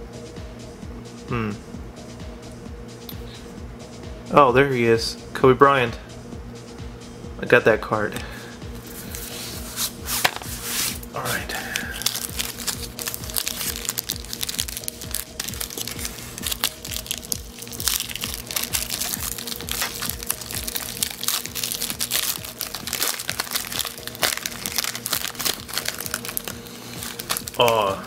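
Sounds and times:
background music with steady beat: 0.0 - 28.0
wrappers crinkling: 8.9 - 28.0.

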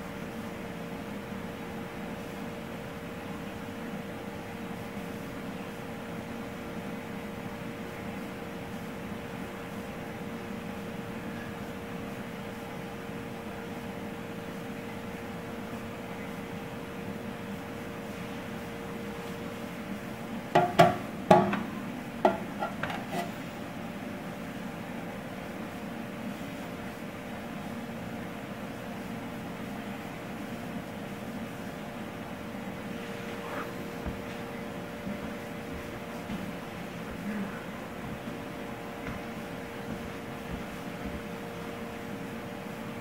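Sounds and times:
steady machine hum: 0.0 - 43.0
sharp knocks: 20.6 - 23.0.

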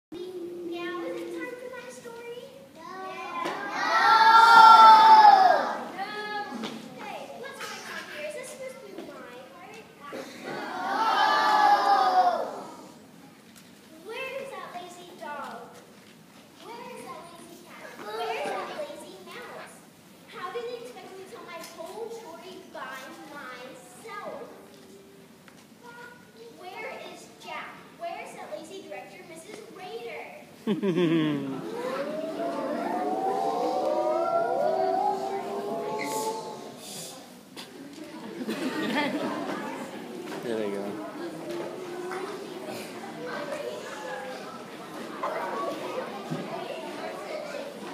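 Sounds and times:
children calling out together: 0.2 - 8.6, 10.1 - 12.9, 30.9 - 38.5, 41.0 - 47.9.

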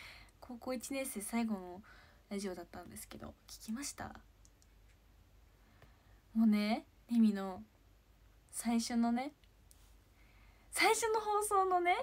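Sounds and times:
woman speaking: 0.4 - 4.2, 6.4 - 7.7, 8.5 - 9.4, 10.7 - 12.0
faint clicks: 4.4 - 5.1.

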